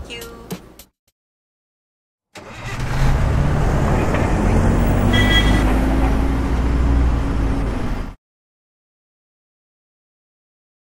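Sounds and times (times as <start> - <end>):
vehicle engine and road noise: 2.4 - 8.2.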